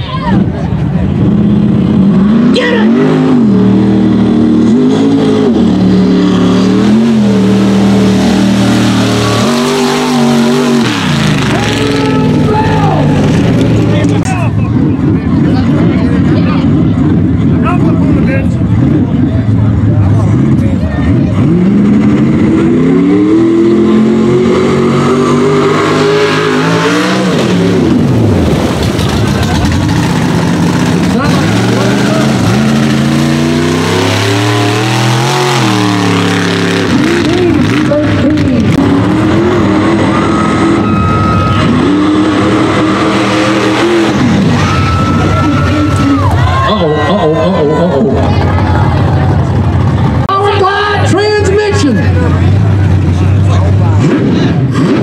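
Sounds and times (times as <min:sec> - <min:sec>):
truck engines revving: 0:00.0 - 0:55.0.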